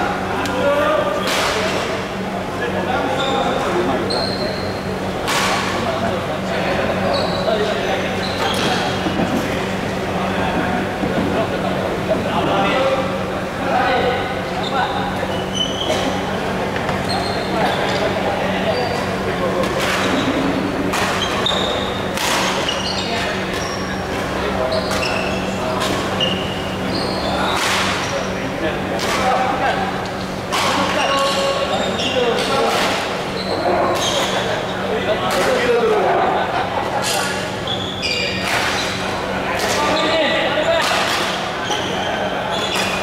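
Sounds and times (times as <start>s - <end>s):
shoes squeaking on wooden floor: 24.7s - 25.6s, 26.2s - 27.6s, 37.7s - 39.0s.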